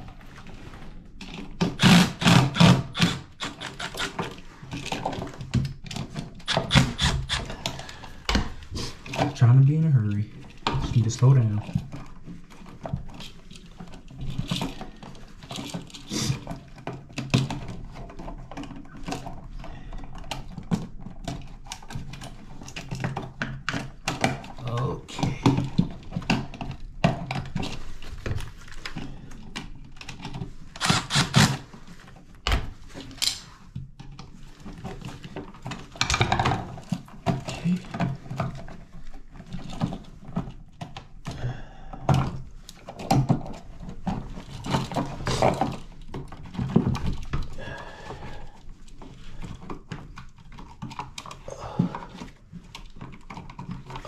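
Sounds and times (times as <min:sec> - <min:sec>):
clicks and rattles of wiring work: 0:00.0 - 0:54.0
cordless drill driving screws: 0:01.8 - 0:04.2, 0:06.5 - 0:07.5, 0:30.8 - 0:31.6.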